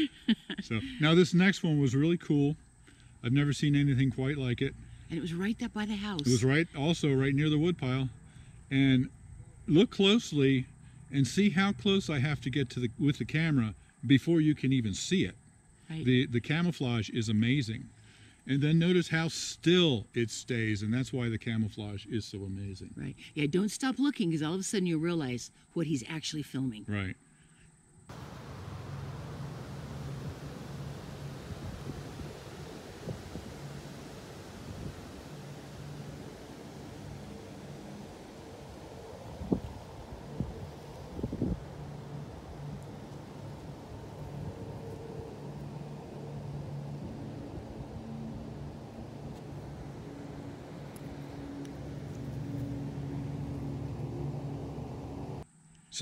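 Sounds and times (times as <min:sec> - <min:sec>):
low outdoor background rumble: 0:00.0 - 0:16.6, 0:27.1 - 0:55.6
low mechanical drone: 0:28.1 - 0:55.4.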